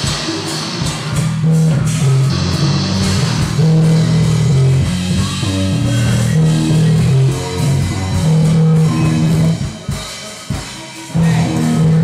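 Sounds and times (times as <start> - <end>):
drum strikes: 0.0 - 12.0
rock music with electric guitar: 0.0 - 12.0.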